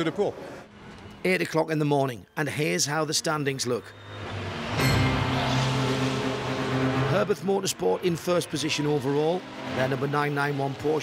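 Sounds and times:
rushing noise: 3.8 - 11.0
race car engine at steady revs: 4.2 - 11.0.

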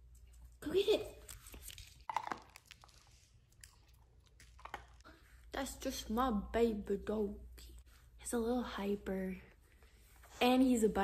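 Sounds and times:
puppy crunching dry kibble: 0.1 - 5.2.

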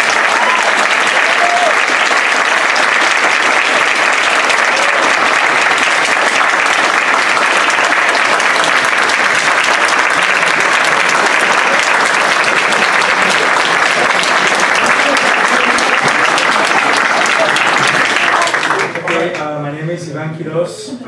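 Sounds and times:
people whooping: 0.0 - 2.1, 4.4 - 5.6
audience applauding: 0.0 - 19.6.

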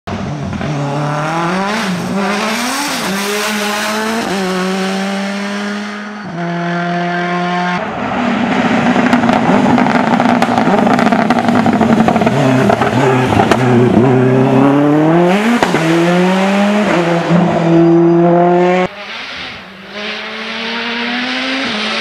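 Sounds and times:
race car engine at high revs: 0.1 - 22.0.

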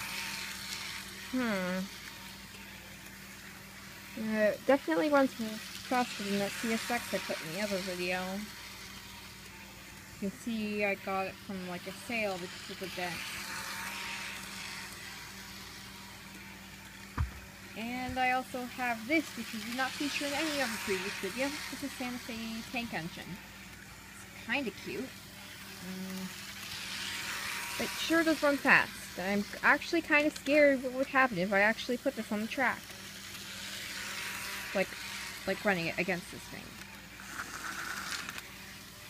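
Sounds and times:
small electric motor humming: 0.0 - 39.0.

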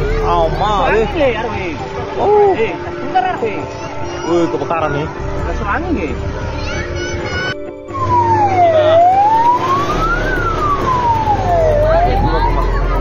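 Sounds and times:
fire engine siren wailing: 7.9 - 13.0.

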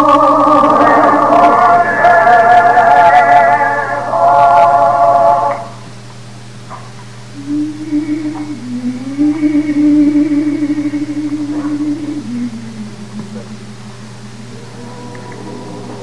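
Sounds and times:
man singing: 0.0 - 5.6, 7.4 - 14.5
low held note: 0.0 - 5.8, 7.4 - 16.0
recording hum: 0.0 - 16.0.

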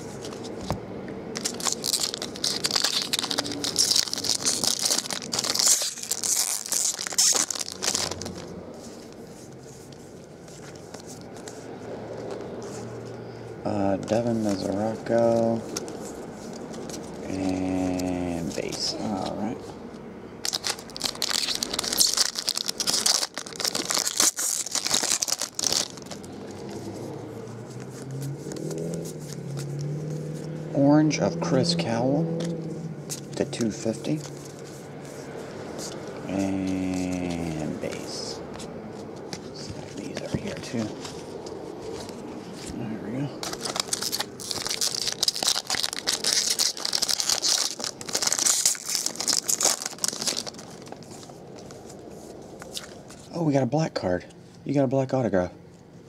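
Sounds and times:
card handling: 0.0 - 13.3, 13.9 - 30.5, 32.4 - 53.4
foil wrapper crinkling: 1.3 - 9.2, 20.4 - 29.9, 43.4 - 53.3.

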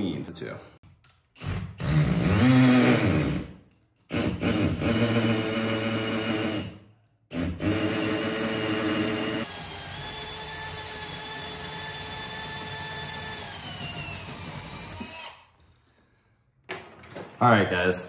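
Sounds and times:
cordless drill boring through wood: 1.4 - 3.5, 4.1 - 6.7, 7.3 - 15.6.

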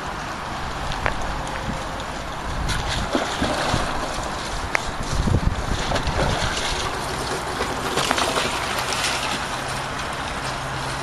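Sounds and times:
steady rushing hiss: 0.0 - 11.0
wind buffeting microphone: 0.0 - 11.0.

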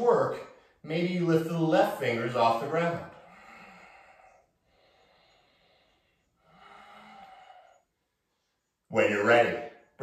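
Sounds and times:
man breathing: 3.0 - 8.9.

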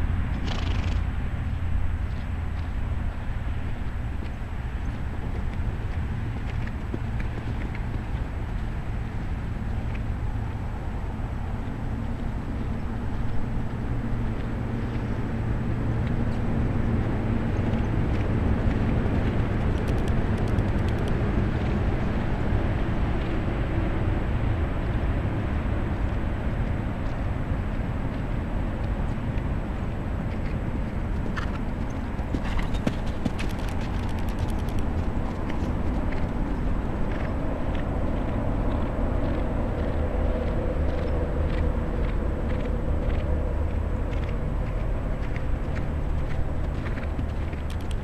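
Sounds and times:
low rumble: 0.0 - 48.0
horse hoofbeats on dirt: 0.4 - 1.1, 3.8 - 10.6, 12.1 - 22.6, 30.2 - 48.0.

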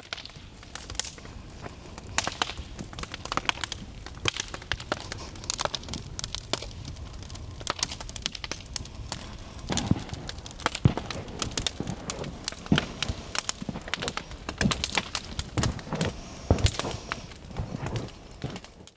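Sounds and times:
bonfire crackling: 0.0 - 18.9
sharp pops and cracks: 0.0 - 18.9.

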